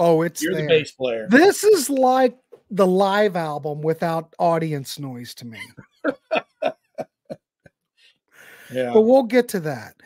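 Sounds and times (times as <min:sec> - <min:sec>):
man laughing: 0:05.6 - 0:07.7.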